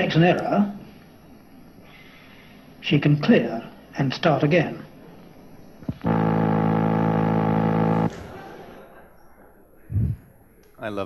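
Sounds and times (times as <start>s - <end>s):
low electronic buzzer tone: 5.8s - 8.2s.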